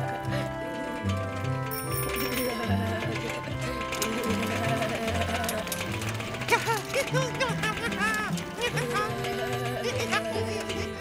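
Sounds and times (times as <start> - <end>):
upbeat cartoon music: 0.0 - 11.0.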